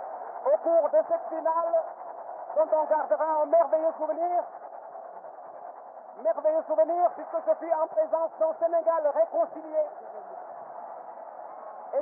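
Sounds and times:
radio broadcast background noise: 0:00.0 - 0:12.0.

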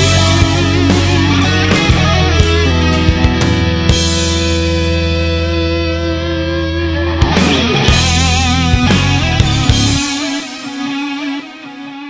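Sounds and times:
rock band instrumental: 0:00.0 - 0:12.0.

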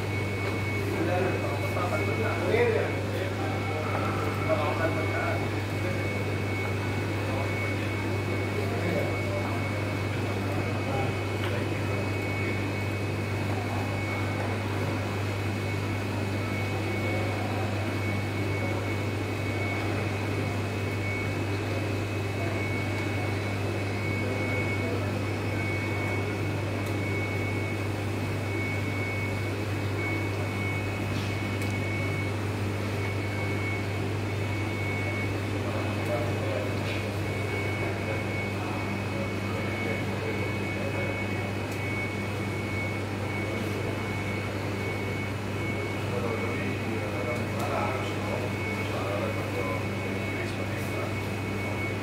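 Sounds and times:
faint voices talking: 0:00.0 - 0:52.0
kitchen equipment humming: 0:00.0 - 0:52.0
thin high whine: 0:00.0 - 0:52.0.

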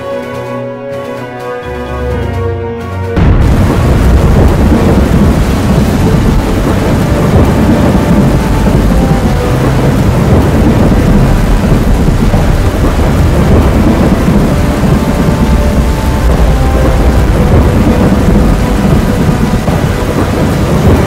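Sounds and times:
deep rumble with rough noise: 0:03.2 - 0:21.0.

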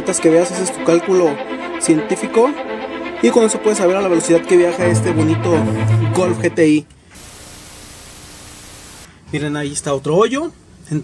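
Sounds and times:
faint steady hum: 0:07.2 - 0:09.1
steady static hiss: 0:07.2 - 0:09.1.

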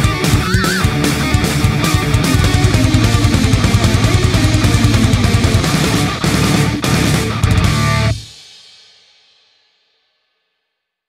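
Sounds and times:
rock song with guitar and drums: 0:00.0 - 0:08.4
cymbal ringing: 0:02.3 - 0:06.4.

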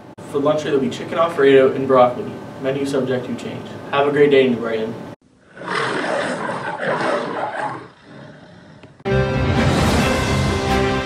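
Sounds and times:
lion roaring: 0:05.4 - 0:09.1.

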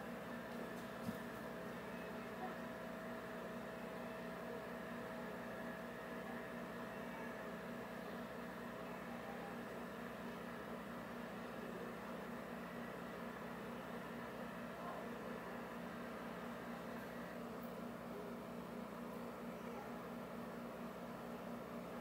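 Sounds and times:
low hum and hiss: 0:00.0 - 0:22.0.

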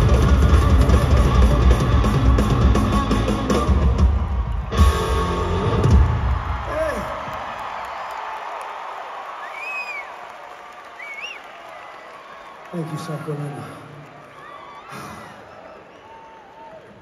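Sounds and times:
rock band playing live: 0:00.0 - 0:06.9
arena crowd cheering: 0:00.0 - 0:17.0
shrill whistle: 0:09.4 - 0:10.2, 0:11.0 - 0:11.7.

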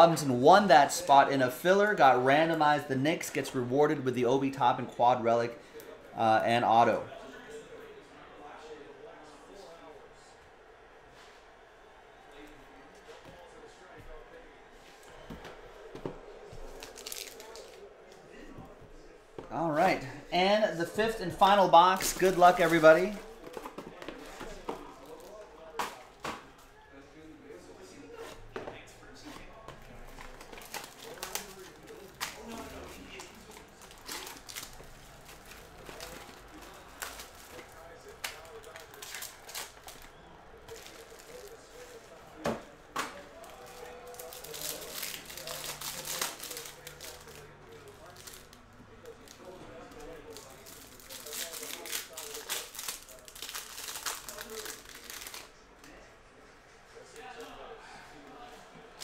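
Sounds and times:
plastic wrapper crinkling and tearing: 0:16.7 - 0:17.8, 0:30.0 - 0:42.1, 0:43.4 - 0:55.5.

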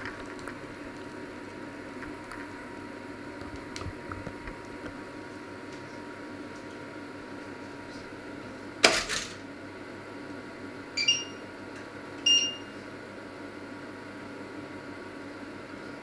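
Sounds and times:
steady low hum: 0:00.0 - 0:16.0
short high-pitched beeps: 0:11.0 - 0:11.4, 0:12.3 - 0:12.7.

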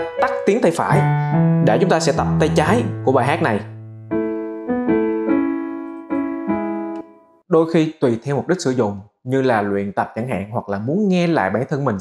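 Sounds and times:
digital piano notes and chords: 0:00.0 - 0:07.5.

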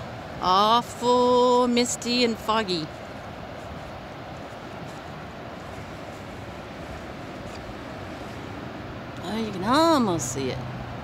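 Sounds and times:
ocean surf rushing: 0:00.0 - 0:11.0.

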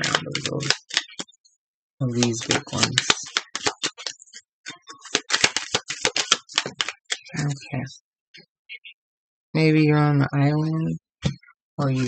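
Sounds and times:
cards being shuffled: 0:00.0 - 0:01.3, 0:02.1 - 0:07.4.

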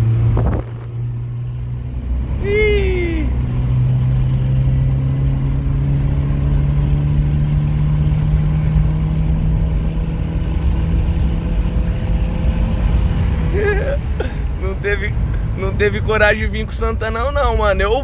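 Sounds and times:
car engine accelerating: 0:00.0 - 0:18.0.

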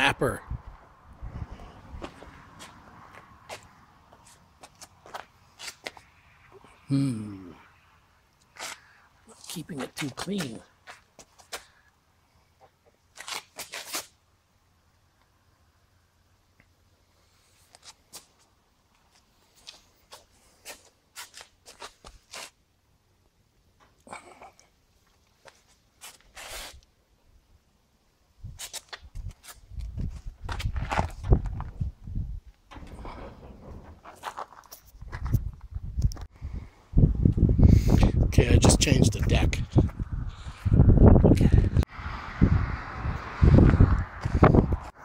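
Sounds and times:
light clicks and scuffs: 0:02.0 - 0:06.1, 0:08.4 - 0:12.0, 0:12.6 - 0:14.2, 0:17.5 - 0:22.6, 0:25.0 - 0:26.9, 0:28.4 - 0:31.7.

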